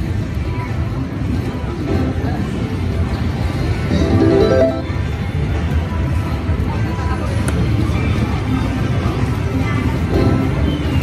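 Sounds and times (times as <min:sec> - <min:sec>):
casino floor din: 0:03.9 - 0:04.9
rising run of tones: 0:03.9 - 0:05.0
slot machine game music: 0:03.9 - 0:05.1.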